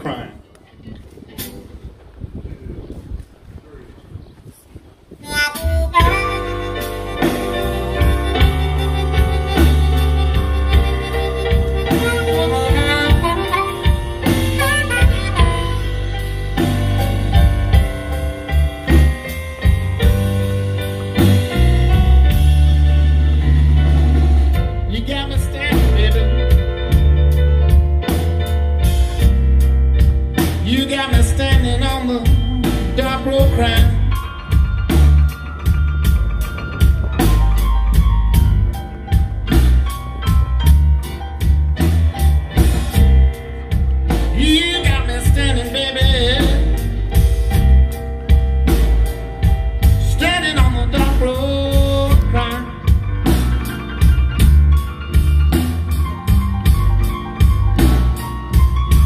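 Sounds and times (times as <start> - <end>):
blues band playing: 0.0 - 2.3, 5.1 - 59.0
harmonica with bent notes: 5.2 - 17.5
wavering lead guitar line: 5.2 - 29.4.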